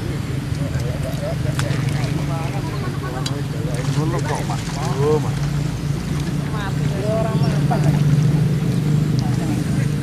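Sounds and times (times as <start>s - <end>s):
distant voices chattering: 0.0s - 10.0s.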